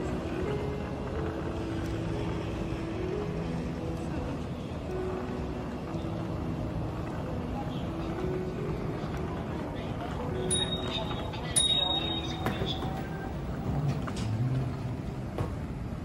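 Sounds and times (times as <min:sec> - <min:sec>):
airport terminal hum: 0:00.0 - 0:16.0
wheeled suitcases rolling: 0:00.0 - 0:16.0.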